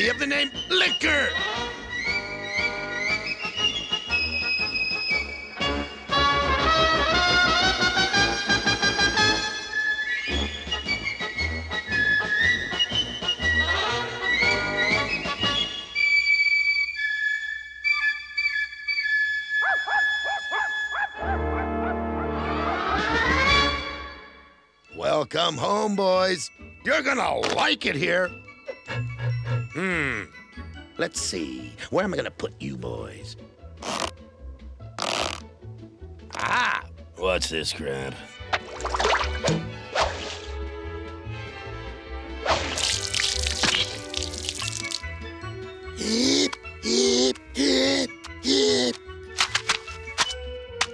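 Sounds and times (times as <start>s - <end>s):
background music: 0.0s - 50.9s
cartoon dog yipping: 19.6s - 21.4s
whip-like cracks: 38.6s - 40.6s, 42.4s - 44.8s.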